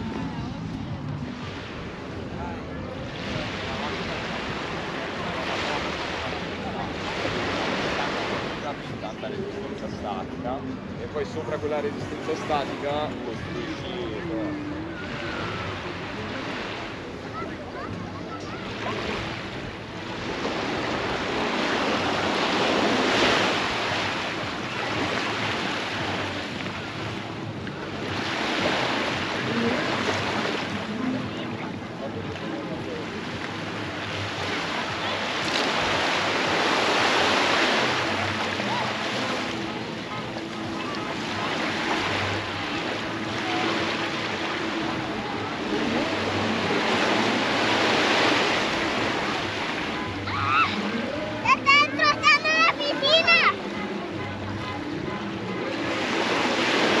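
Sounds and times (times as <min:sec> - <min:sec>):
sea surf breaking on beach: 0:00.0 - 0:57.0.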